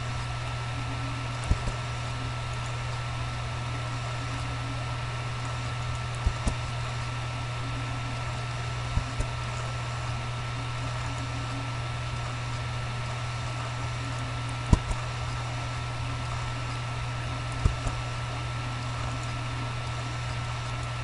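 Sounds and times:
low electrical hum: 0.0s - 21.0s
thin steady whine: 0.0s - 21.0s.

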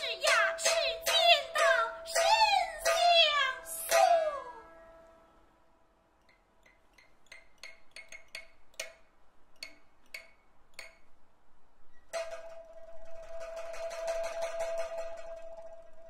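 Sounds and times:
soprano singing melisma: 0.0s - 4.9s
plucked pipa notes: 0.0s - 5.3s, 12.1s - 16.0s.

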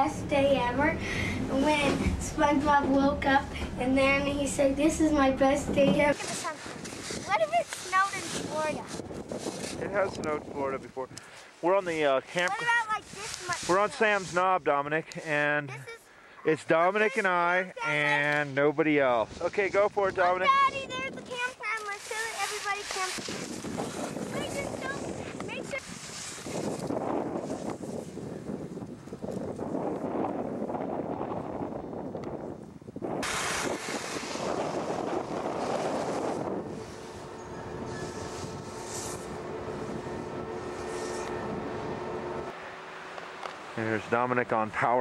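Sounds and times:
wind rushing over microphone: 0.0s - 11.2s, 22.4s - 42.6s
faint steady hum: 33.3s - 45.0s.

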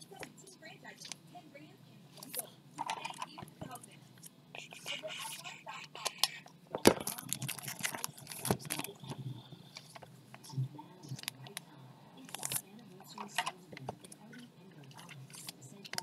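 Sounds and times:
packaging crinkling and scraping: 6.9s - 9.0s.

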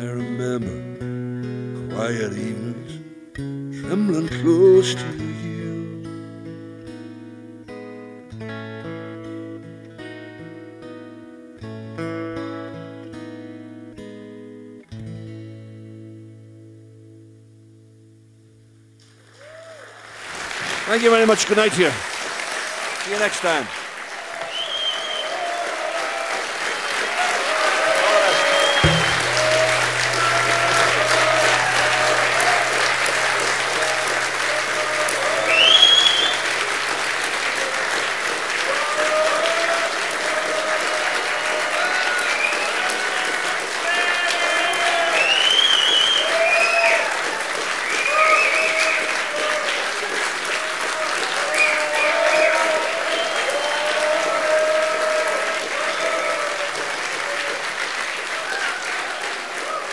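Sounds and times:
audience applauding: 19.2s - 59.9s
cheers and whistles: 19.4s - 20.2s, 22.4s - 59.9s.

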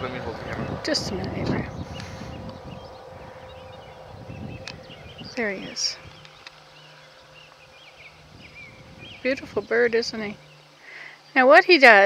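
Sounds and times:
camera handling rumble: 4.5s - 5.0s, 6.0s - 6.8s.

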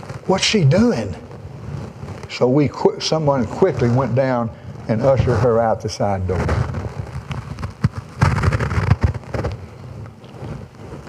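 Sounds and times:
clothing rustling against microphone: 0.0s - 11.0s.

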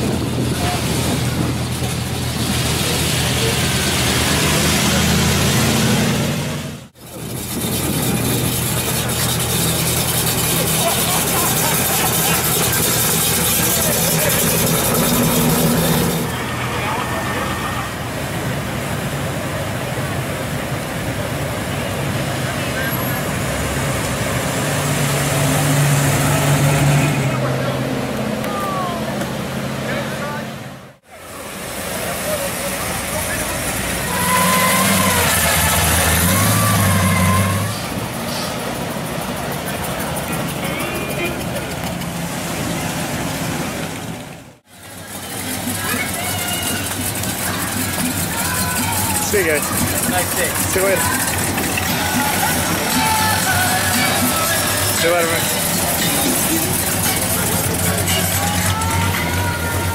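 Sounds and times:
crowd voices hubbub: 0.0s - 43.2s, 44.1s - 59.9s
car engines driving past: 0.0s - 59.9s.

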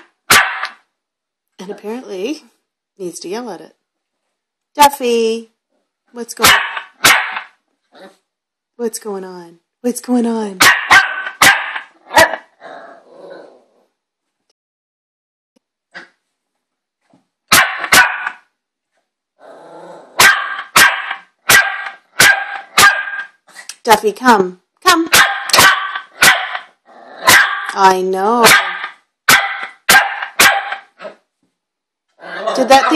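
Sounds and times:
puppy barking sharply: 0.3s - 0.8s, 6.4s - 7.6s, 10.6s - 12.5s, 17.5s - 18.5s, 20.2s - 23.3s, 25.1s - 27.8s, 28.4s - 31.0s.

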